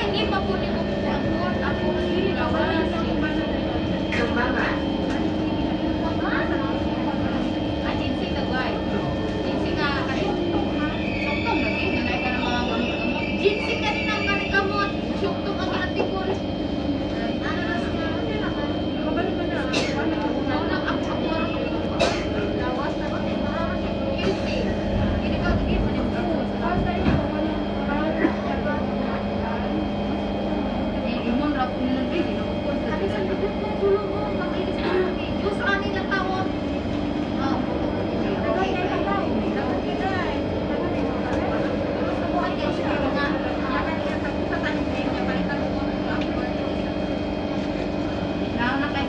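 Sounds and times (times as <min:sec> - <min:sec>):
passengers talking: 0:00.0 - 0:49.0
train equipment hum: 0:00.0 - 0:49.0.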